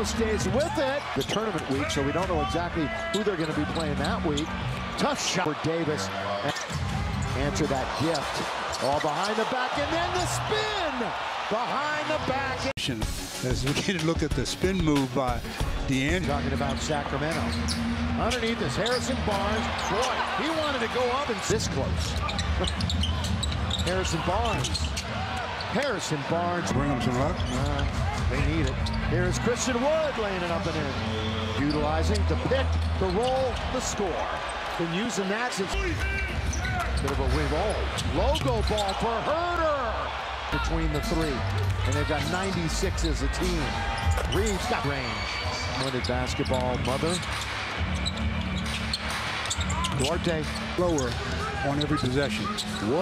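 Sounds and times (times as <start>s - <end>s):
arena crowd noise: 0.0s - 53.0s
sneakers squeaking on hardwood: 16.6s - 20.9s, 21.6s - 25.8s, 27.2s - 29.1s, 36.0s - 39.3s, 41.0s - 53.0s.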